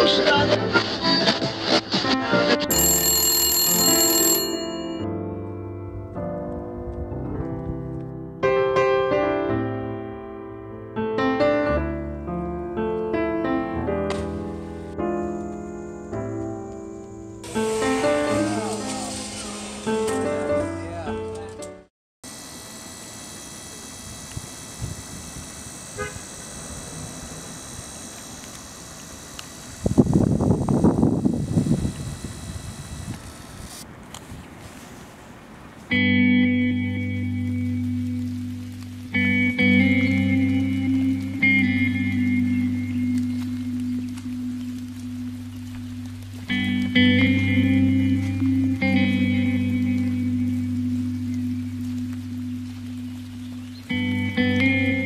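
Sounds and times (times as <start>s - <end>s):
telephone bell ringing: 2.7s - 5.1s
soft music: 4.6s - 21.9s, 35.9s - 55.0s
background hiss: 13.8s - 20.6s, 26.0s - 55.0s
photo printer whirring rattle: 22.3s - 30.0s.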